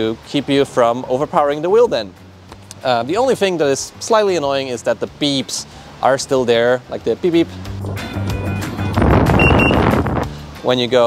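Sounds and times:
road noise: 0.0s - 11.0s
wind: 0.0s - 11.0s
short high warning beeps: 9.4s - 9.8s.

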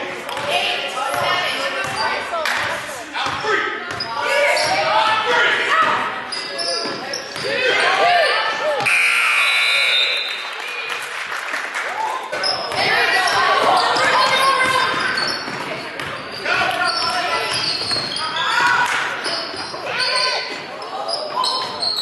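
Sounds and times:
sneakers squeaking: 0.3s - 10.3s, 12.3s - 22.0s.

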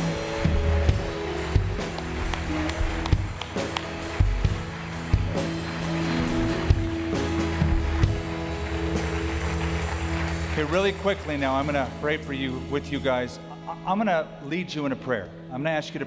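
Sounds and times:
steady drum beat: 0.0s - 11.8s
worship band playing held chords: 0.0s - 15.6s.

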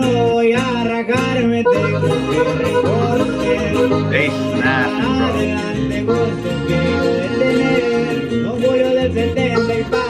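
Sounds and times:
acoustic guitars: 0.0s - 10.0s
man singing: 0.0s - 10.0s
bass notes: 1.3s - 8.6s.

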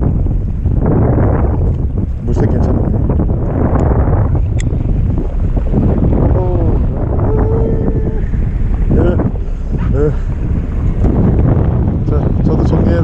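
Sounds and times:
boat engine: 0.0s - 13.0s
wind buffeting microphone: 0.0s - 13.0s.

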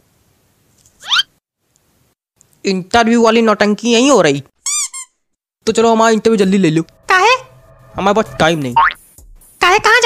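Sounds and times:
cartoon squeaks: 1.0s - 1.3s, 4.6s - 5.2s.

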